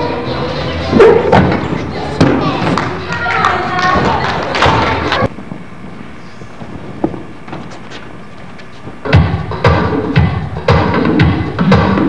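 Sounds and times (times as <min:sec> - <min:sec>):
background music: 0:00.0 - 0:05.3, 0:09.0 - 0:12.0
voices in large gym: 0:00.0 - 0:05.3.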